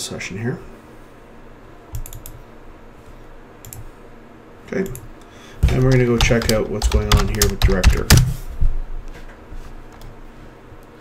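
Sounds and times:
keyboard key clicks: 0:05.6 - 0:08.3.

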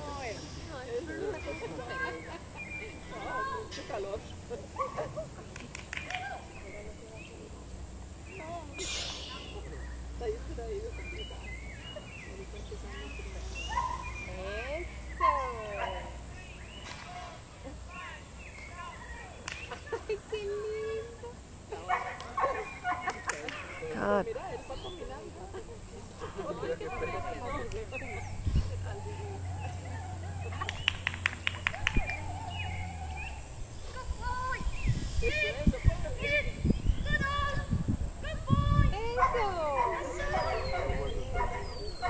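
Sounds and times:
faint high bird chirps: 0:08.2 - 0:10.1
bird long wavering call: 0:08.3 - 0:10.0.

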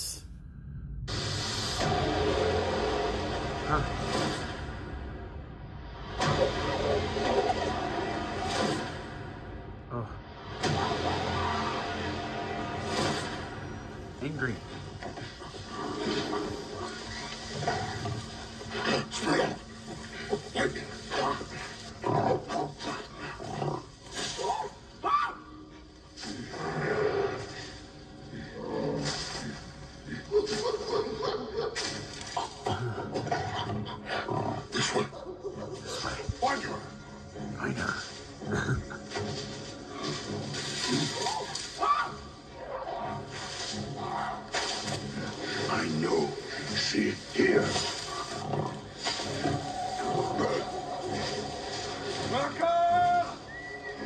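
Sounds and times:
movie trailer music: 0:00.0 - 0:54.0.

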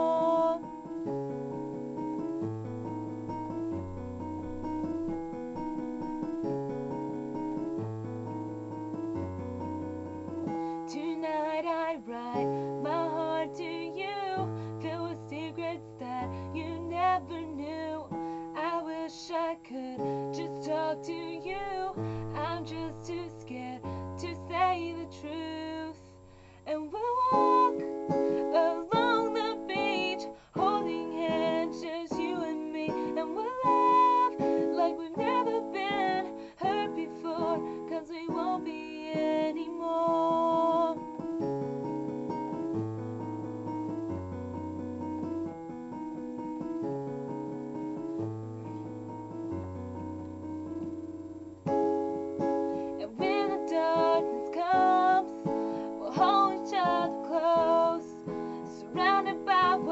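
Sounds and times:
woman singing a ballad: 0:00.0 - 0:01.2, 0:10.5 - 0:41.2, 0:52.4 - 0:59.9
instrumental accompaniment: 0:00.0 - 0:11.0.

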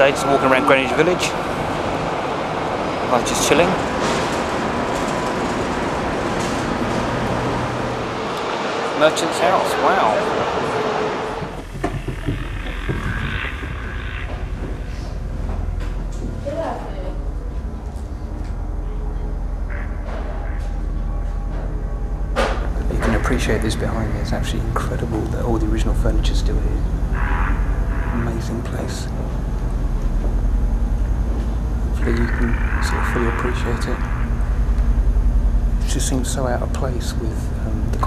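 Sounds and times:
low indoor rumble: 0:00.0 - 0:38.0
microphone handling rumble: 0:11.4 - 0:16.6.

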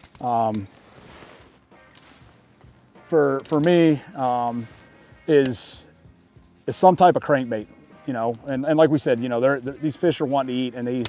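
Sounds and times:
fishing gear and clothing rustling: 0:00.0 - 0:11.0.

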